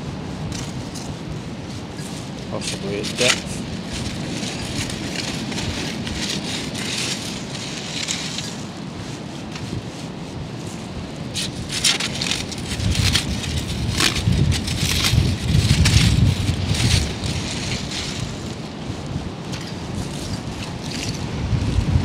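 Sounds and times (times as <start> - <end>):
wind buffeting microphone: 0.0 - 22.0
pebbles crunching: 1.8 - 9.9, 10.6 - 21.2.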